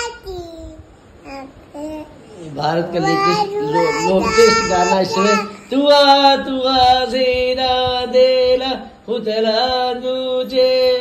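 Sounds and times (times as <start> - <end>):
toddler singing: 0.0 - 2.2, 2.9 - 5.6.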